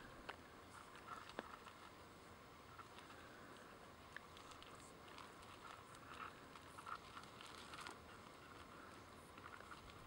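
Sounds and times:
gravel shifting under snakes: 0.0s - 10.0s
low hiss: 0.0s - 10.0s.

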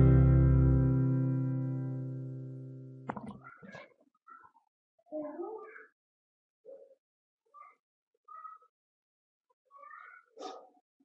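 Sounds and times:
faint high-pitched vocal calls: 3.4s - 6.0s, 9.7s - 10.7s.

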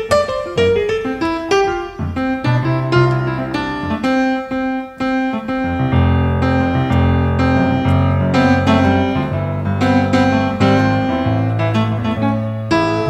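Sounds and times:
jazz piano: 0.0s - 13.0s.

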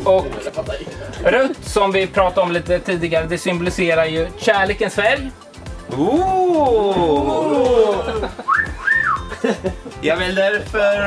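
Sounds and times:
sliding whistled notes: 8.4s - 9.3s.

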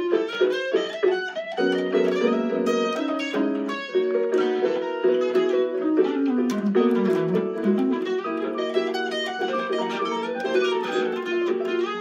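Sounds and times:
plucked string instrument melody: 0.0s - 12.0s.

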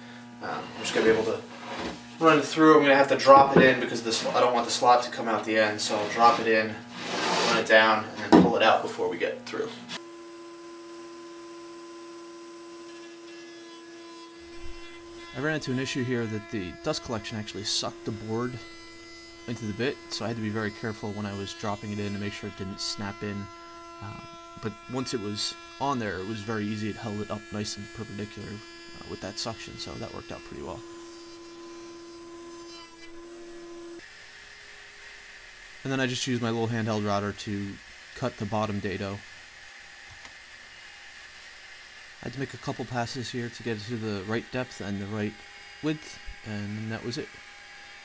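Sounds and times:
router and dust collector humming: 0.0s - 48.0s.

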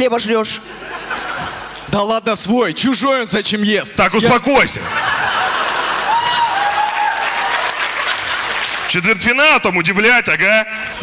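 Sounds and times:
audience applauding: 5.4s - 9.0s.

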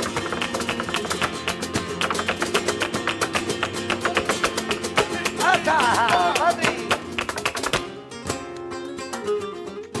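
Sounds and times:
sharp handclaps: 0.0s - 8.0s
flamenco guitars playing: 0.0s - 10.0s.

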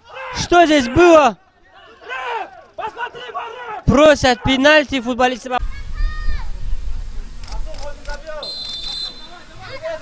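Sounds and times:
players' voices: 0.0s - 10.0s
referee's whistle blast: 8.4s - 9.4s.

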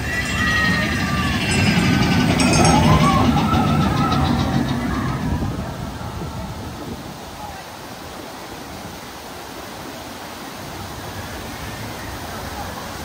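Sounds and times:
roller coaster running on track: 0.0s - 8.3s.

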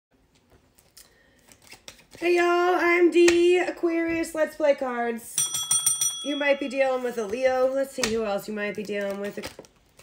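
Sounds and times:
deck of cards tapped and rustled: 0.3s - 2.2s.

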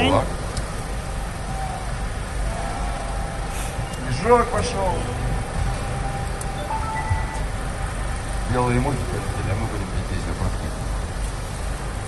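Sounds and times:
faint distant music: 0.9s - 12.0s
held note: 3.8s - 8.5s
low rumble: 3.8s - 12.0s.

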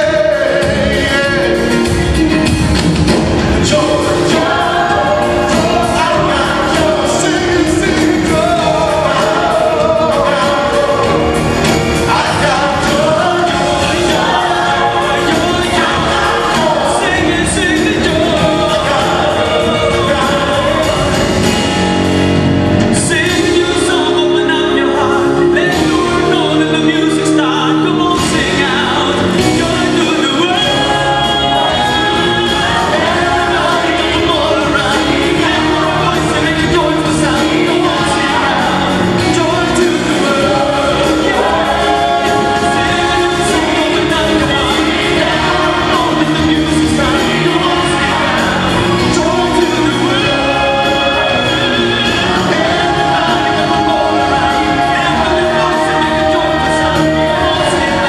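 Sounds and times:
live band playing: 0.0s - 58.0s
mixed vocal ensemble singing: 0.0s - 58.0s.

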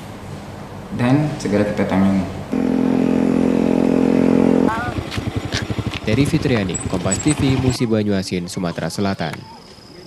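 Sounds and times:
motorcycle engine humming: 2.5s - 7.8s
motorcycle engine pulsing: 2.6s - 7.8s.

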